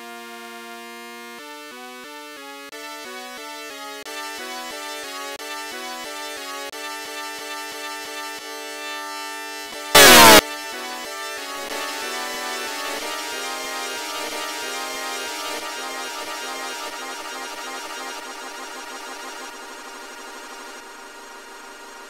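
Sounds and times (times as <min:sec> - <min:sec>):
loud distorted falling blast: 0:10.0 - 0:10.4
synth-like stepping tones: 0:11.6 - 0:22.0.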